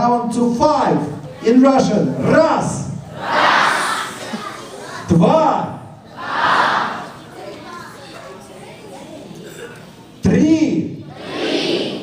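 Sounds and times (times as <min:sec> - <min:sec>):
children shouting together: 0:03.1 - 0:05.1, 0:06.1 - 0:08.2, 0:11.0 - 0:12.0.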